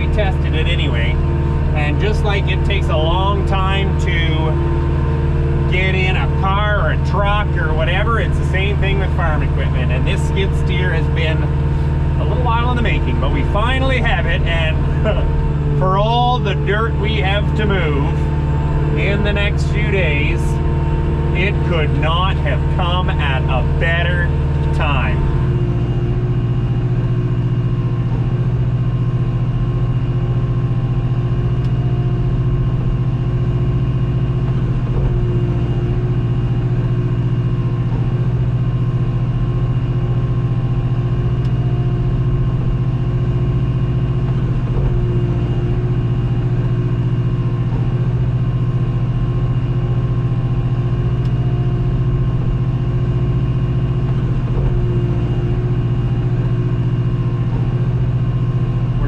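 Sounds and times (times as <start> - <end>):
skid steer engine running: 0.0 - 59.0.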